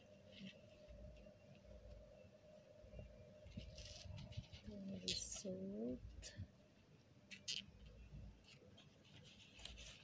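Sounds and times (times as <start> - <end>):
faint background hum: 0.0 - 10.0
light rustles of handling: 3.5 - 5.5, 8.4 - 10.0.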